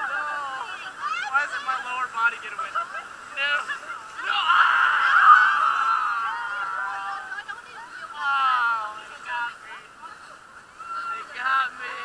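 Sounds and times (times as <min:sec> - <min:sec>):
people chattering and laughing: 0:00.0 - 0:12.0
group shouting: 0:04.2 - 0:07.2.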